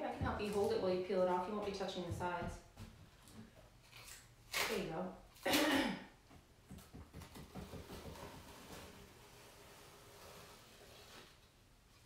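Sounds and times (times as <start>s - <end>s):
tape peeling crackle: 3.8s - 5.6s, 8.1s - 11.5s
person clearing throat: 5.5s - 6.1s.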